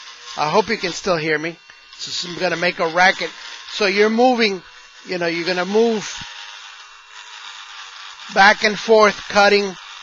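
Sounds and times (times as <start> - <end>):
rotary tool grinding plastic: 0.0 - 10.0.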